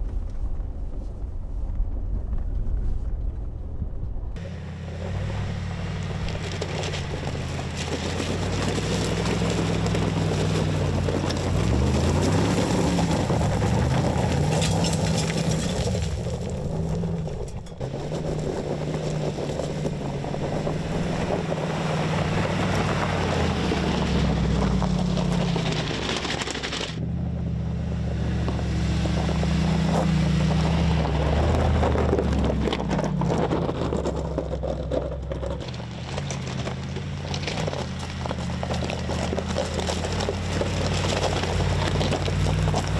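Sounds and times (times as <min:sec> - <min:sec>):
engine revving under load: 0:04.4 - 0:42.9
tyres crunching over gravel: 0:04.4 - 0:42.9.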